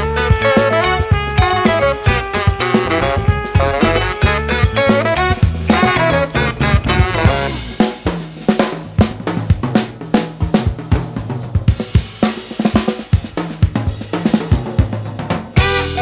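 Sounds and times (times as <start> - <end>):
horns: 0.0 - 8.2, 15.6 - 16.0
electric bass: 0.0 - 16.0
funk drum break: 0.0 - 16.0.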